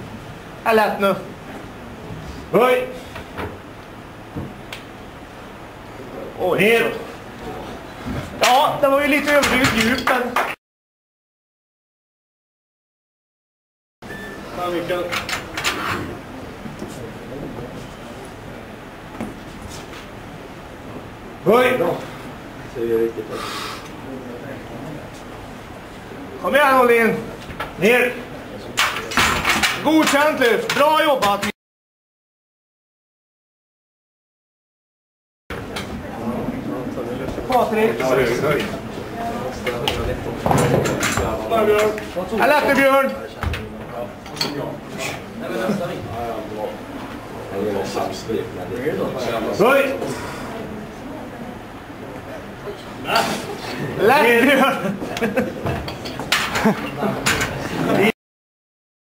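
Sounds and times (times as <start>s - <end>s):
low voices in a gym: 5.7s - 10.3s, 14.4s - 31.4s, 35.6s - 58.2s.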